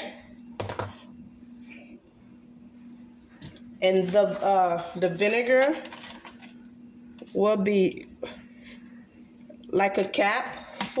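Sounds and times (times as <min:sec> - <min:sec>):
steady low hum: 0:00.0 - 0:11.0
woman's voice: 0:03.8 - 0:05.9, 0:07.3 - 0:08.1, 0:09.7 - 0:11.0.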